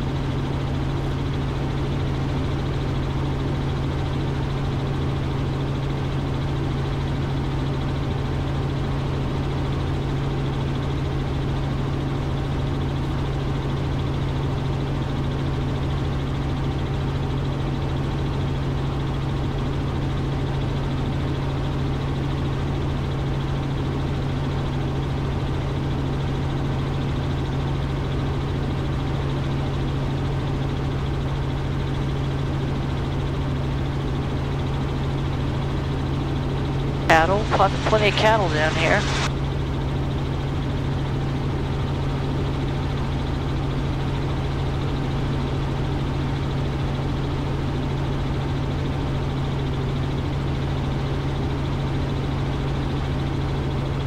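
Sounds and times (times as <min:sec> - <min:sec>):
helicopter engine and rotors drone: 0:00.0 - 0:54.0.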